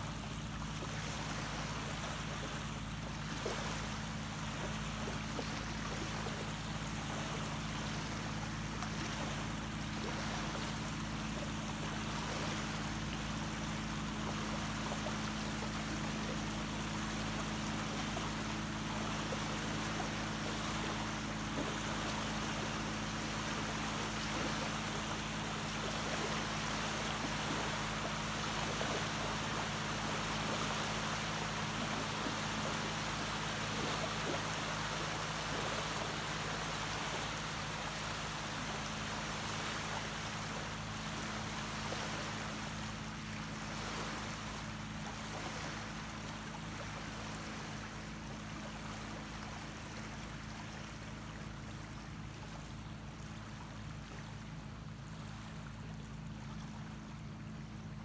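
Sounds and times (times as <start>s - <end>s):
constant low hum: 0.0s - 58.0s
small waves lapping on shore: 0.0s - 58.0s.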